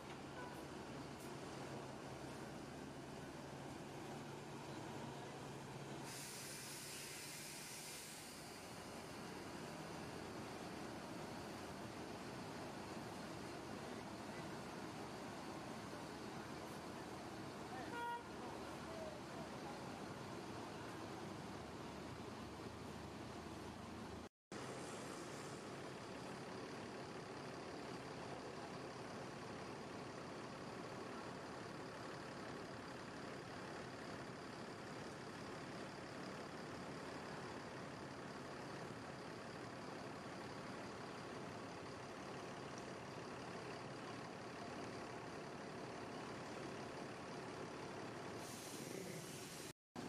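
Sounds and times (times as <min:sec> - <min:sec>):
diesel coach engines idling: 0:00.0 - 0:49.7.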